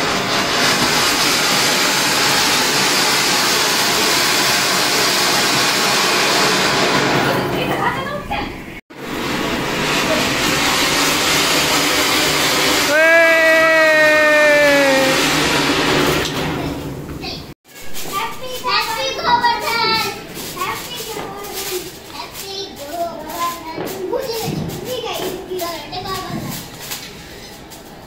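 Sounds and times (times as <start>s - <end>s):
firework hissing: 0.0s - 7.4s, 8.9s - 17.1s, 17.7s - 28.0s
children's voices: 18.1s - 26.8s.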